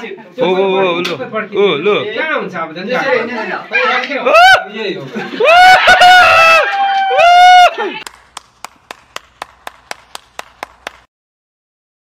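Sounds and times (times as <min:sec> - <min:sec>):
person clapping hands: 0:08.0 - 0:11.1.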